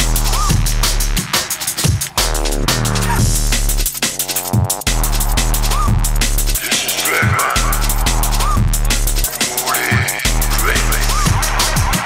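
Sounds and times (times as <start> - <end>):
drum and bass music: 0.0 - 12.0.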